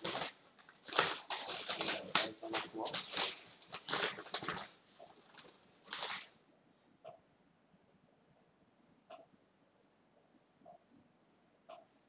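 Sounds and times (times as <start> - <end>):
dove flapping wings: 0.0 - 6.4
wings rattling cage bars: 0.0 - 6.4.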